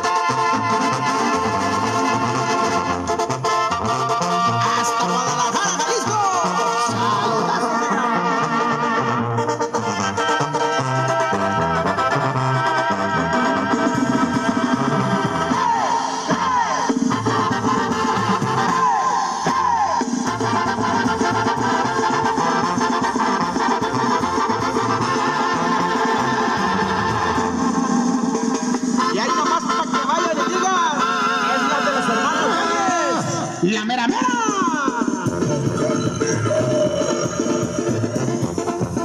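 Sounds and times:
brass band dance music: 0.0s - 39.0s.

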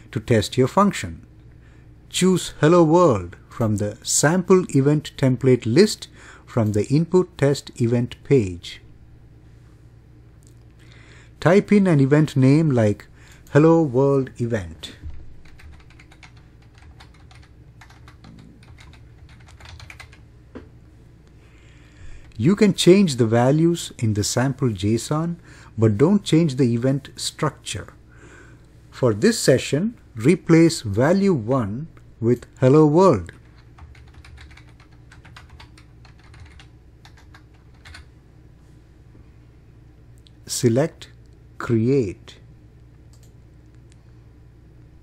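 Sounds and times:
computer keyboard typing: 15.4s - 20.2s, 33.4s - 38.1s
keyboard typing clicks: 15.4s - 20.2s, 43.1s - 43.4s.

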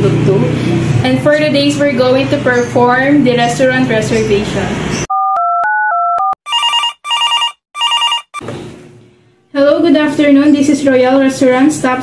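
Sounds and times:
telephone ringing: 5.1s - 8.4s
touch-tone dialing beeps: 5.1s - 8.4s.

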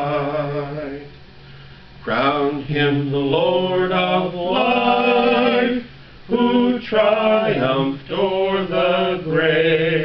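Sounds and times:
man singing a hymn: 0.0s - 1.2s, 2.0s - 10.0s.

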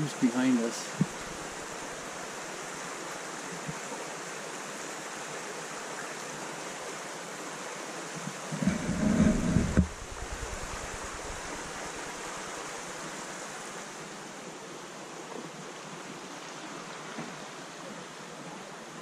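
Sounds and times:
outdoor rushing hiss: 8.2s - 14.1s
wind buffeting microphone: 8.5s - 12.3s.

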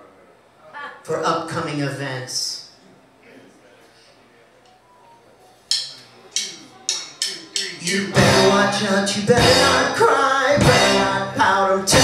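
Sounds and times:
drumsticks clicking: 5.7s - 7.8s
band singing: 7.2s - 12.0s.

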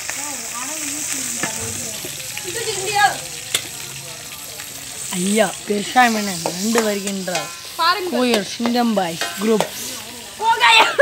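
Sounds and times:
crab frying in oil: 0.0s - 11.0s
voices calling out: 0.1s - 11.0s.

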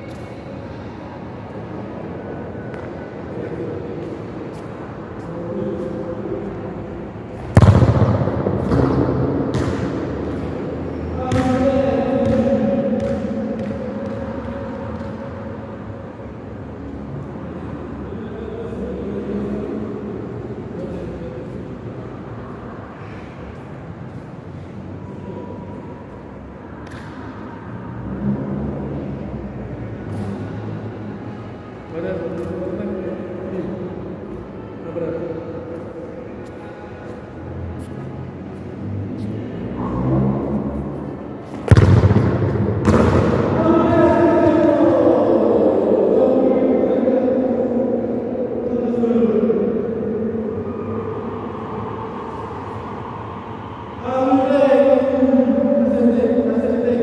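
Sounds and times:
ball bouncing in a hall: 0.0s - 0.8s, 1.4s - 16.4s, 20.1s - 34.0s, 35.6s - 45.6s
football kicked: 7.5s - 10.0s, 11.3s - 11.6s, 41.6s - 43.6s.

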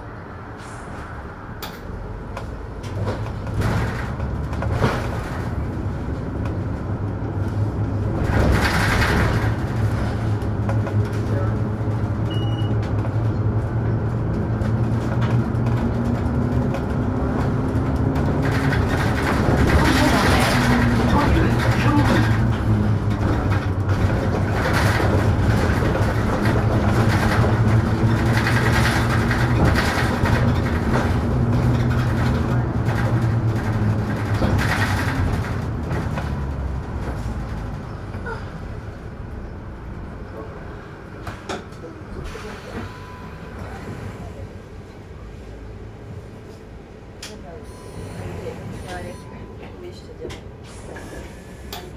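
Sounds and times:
bus engine humming: 0.0s - 51.9s.

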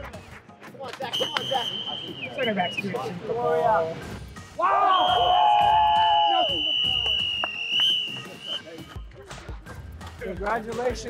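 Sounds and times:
players yelling and cheering: 1.0s - 9.0s
long shrill whistle: 1.2s - 3.0s, 4.7s - 8.9s.

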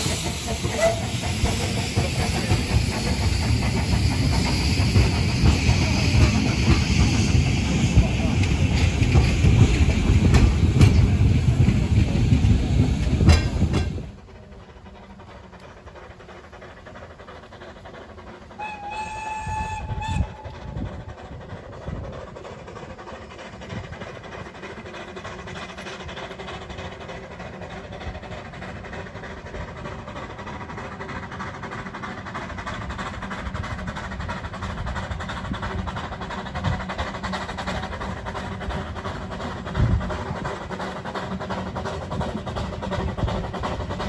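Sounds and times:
steam locomotive whistle: 0.0s - 1.4s, 18.6s - 20.8s
steam locomotive running: 0.0s - 44.0s.

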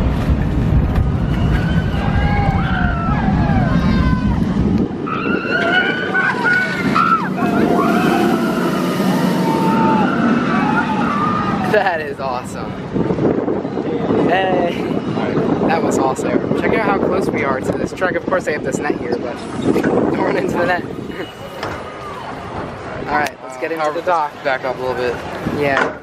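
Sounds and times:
roller coaster train passing: 0.0s - 14.2s
low rumble: 0.0s - 21.2s
riders screaming: 1.4s - 11.7s.

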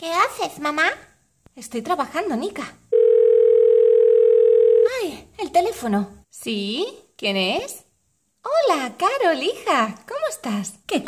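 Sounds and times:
telephone ring tone: 2.9s - 4.9s.

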